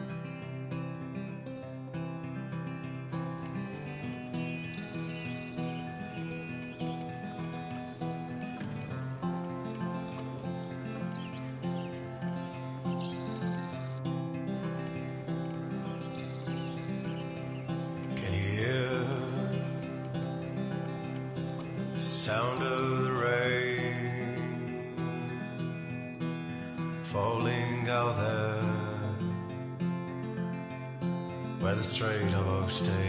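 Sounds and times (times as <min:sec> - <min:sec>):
instrumental background music: 0:03.1 - 0:24.2.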